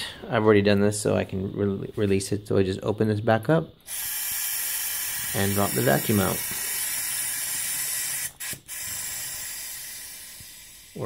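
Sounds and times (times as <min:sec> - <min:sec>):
air hissing through valve: 0:03.8 - 0:11.0.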